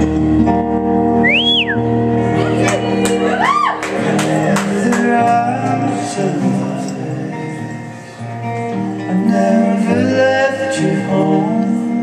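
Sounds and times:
acoustic guitar: 0:00.0 - 0:12.0
sharp whistle: 0:01.2 - 0:01.8.

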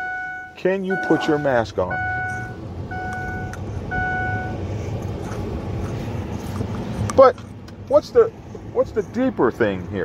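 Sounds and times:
electronic beeper tone: 0:00.0 - 0:04.6
vehicle rumble: 0:00.0 - 0:10.0.

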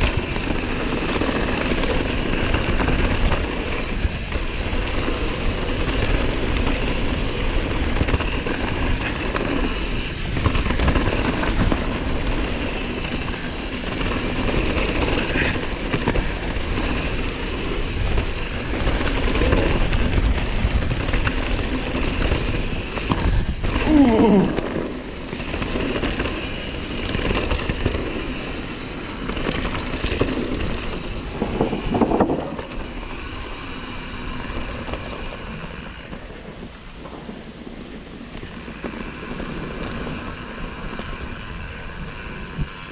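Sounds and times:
bike tyres rumbling and rattling: 0:00.0 - 0:42.9
wind buffeting microphone: 0:00.0 - 0:42.9.

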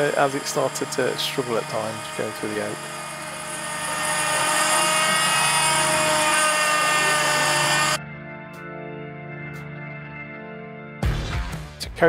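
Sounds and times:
trim router whining: 0:00.0 - 0:08.0.

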